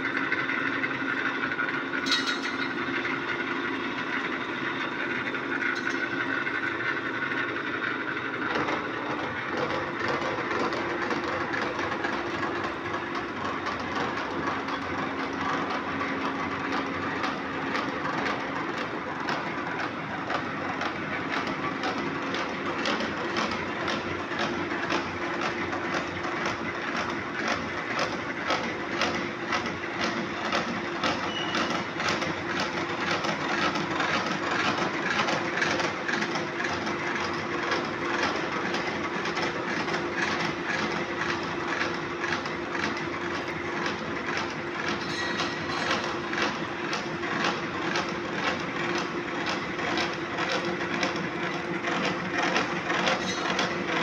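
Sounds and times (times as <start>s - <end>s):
milling machine humming and clattering: 0.0s - 54.0s.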